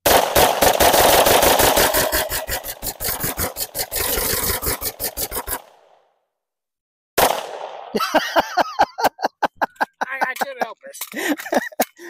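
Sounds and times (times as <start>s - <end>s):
rapid gunfire: 0.0s - 6.0s, 7.2s - 7.9s.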